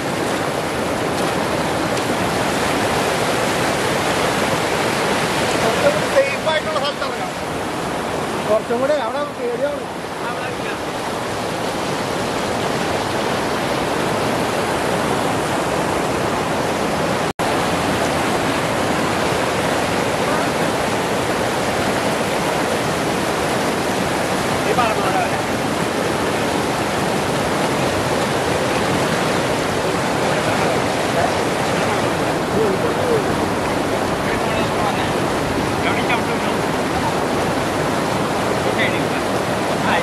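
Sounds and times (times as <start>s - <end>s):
river rapids rushing over rocks: 0.0s - 40.0s.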